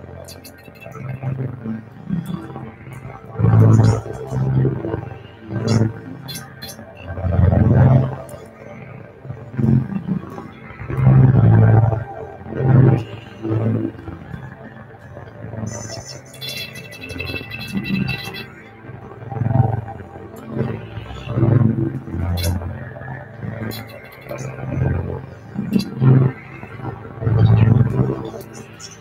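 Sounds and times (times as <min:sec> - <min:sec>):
low growling electronic sound: 0:00.0 - 0:29.0.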